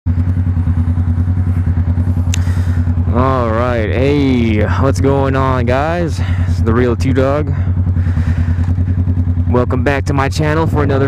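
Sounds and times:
motorcycle engine idling: 0.1 - 11.0
man speaking: 3.0 - 7.7, 9.5 - 11.0.

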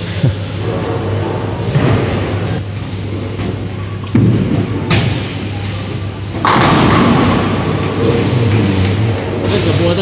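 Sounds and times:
bowling ball rolling: 6.3 - 9.5
bowling pins crashing: 6.4 - 8.3.

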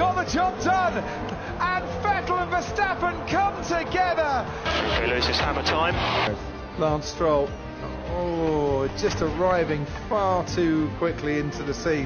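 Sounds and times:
background music: 0.0 - 12.0
commentator talking: 1.6 - 7.0
burst of noise: 4.5 - 6.4.

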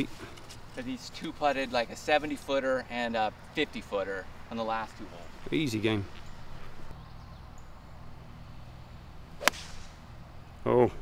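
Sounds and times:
golf club striking ball: 9.4 - 10.0.

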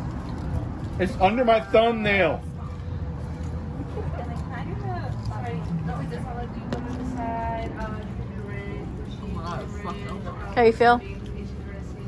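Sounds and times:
diners chattering: 1.0 - 12.0.

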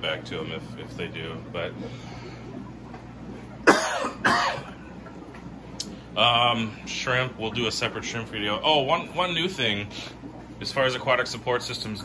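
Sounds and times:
man coughing: 3.6 - 4.8.

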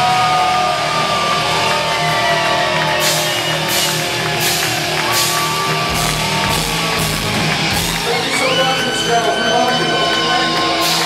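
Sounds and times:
heavy metal band playing live: 0.0 - 11.0
steady crashing beat: 2.8 - 8.7
bending lead guitar line: 3.0 - 11.0.

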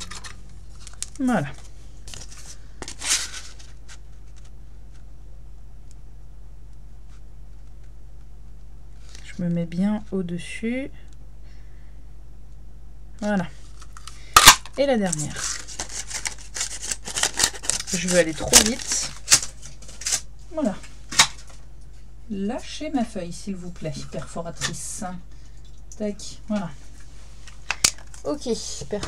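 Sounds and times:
cardstock rustling and sliding: 2.1 - 4.5, 15.2 - 20.2.

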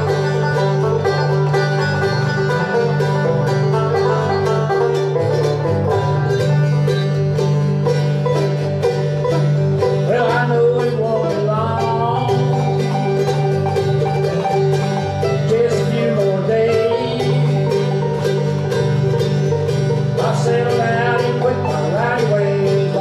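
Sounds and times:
banjo picking fast rolls: 0.0 - 23.0
bluegrass band playing: 0.0 - 23.0.

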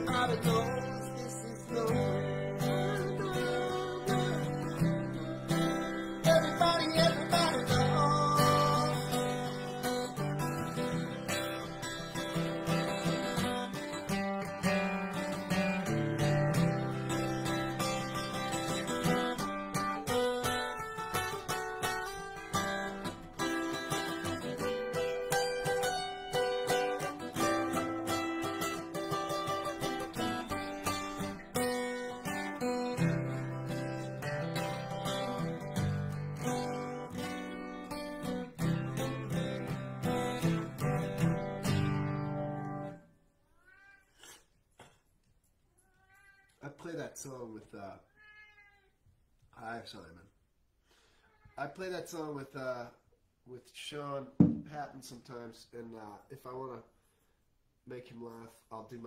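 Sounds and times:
acoustic guitar strumming chords: 0.0 - 43.0
cat meowing: 43.4 - 44.4, 45.7 - 46.6, 48.1 - 49.0, 51.2 - 51.6.

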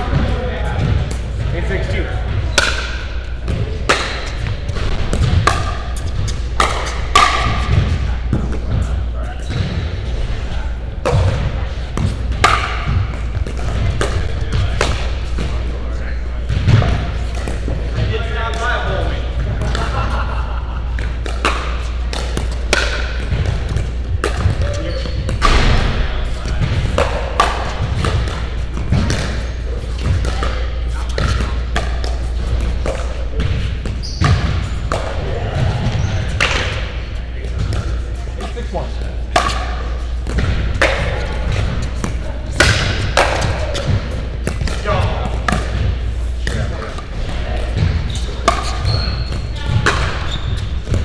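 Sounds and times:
ball bouncing on court: 0.0 - 10.0, 11.0 - 20.1, 20.9 - 51.0
steady low hum: 0.0 - 51.0.

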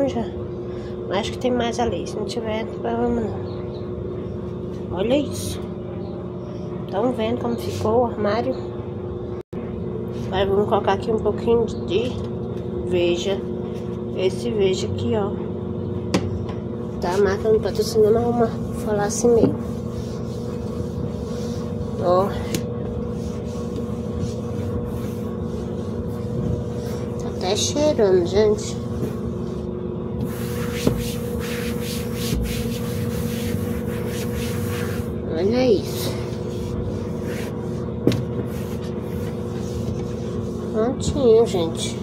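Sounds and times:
washing machine running: 0.0 - 42.0.

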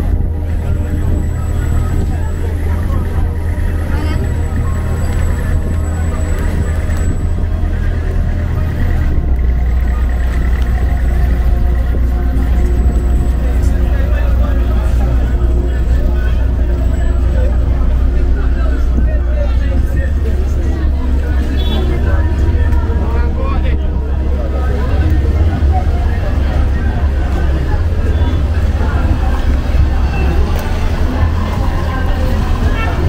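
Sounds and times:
people's voices: 0.0 - 33.0
steady deep rumble: 0.0 - 33.0
vehicles running: 0.0 - 33.0.

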